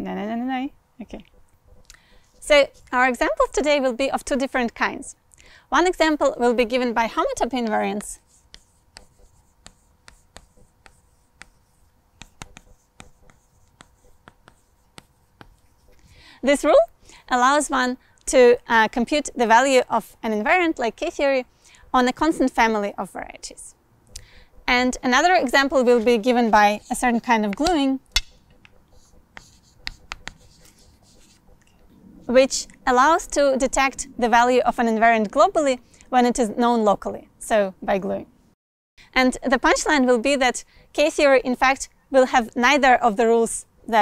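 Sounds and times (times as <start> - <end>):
chalk writing on chalkboard: 1.3 - 3.5, 7.2 - 16.2, 24.5 - 31.7.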